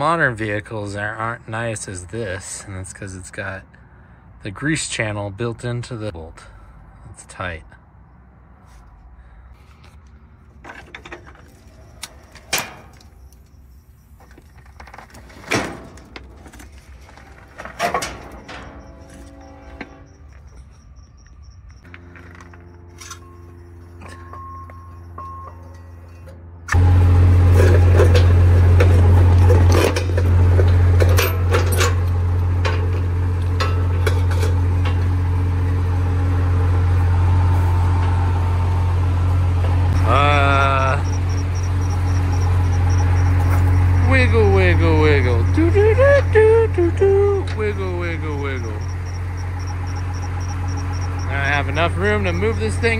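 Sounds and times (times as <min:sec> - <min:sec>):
truck engine running: 0:10.0 - 0:52.9
metallic clanks of tools: 0:21.9 - 0:26.6, 0:27.6 - 0:35.1.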